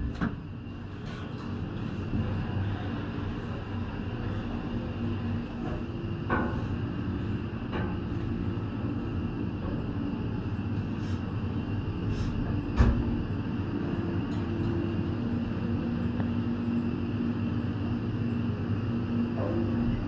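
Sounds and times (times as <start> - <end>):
gondola cabin rumble and hum: 0.0 - 20.0.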